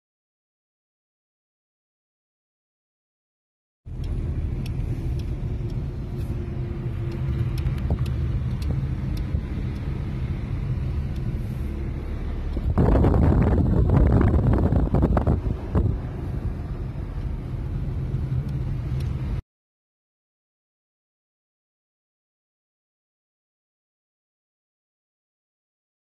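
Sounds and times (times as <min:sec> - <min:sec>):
car engine and road rumble: 0:03.9 - 0:19.4.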